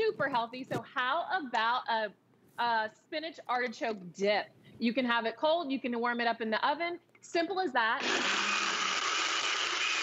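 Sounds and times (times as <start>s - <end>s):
blender whirring: 8.0s - 10.0s.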